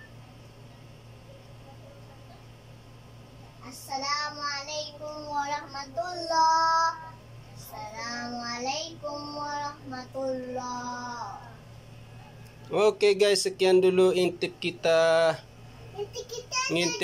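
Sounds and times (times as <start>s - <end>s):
child singing: 3.6s - 11.5s, 16.2s - 17.0s.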